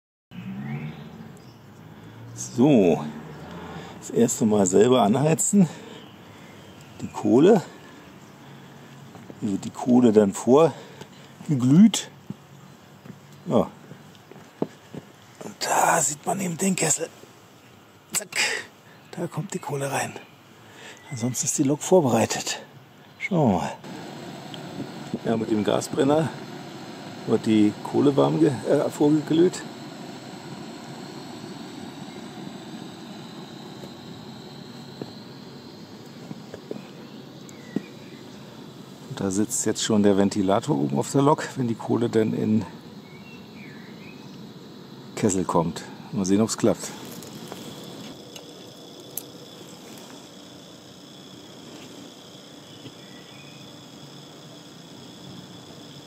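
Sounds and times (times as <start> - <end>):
electric fan whirring: 23.5 - 56.0
gas burner running: 23.8 - 40.4, 45.2 - 56.0.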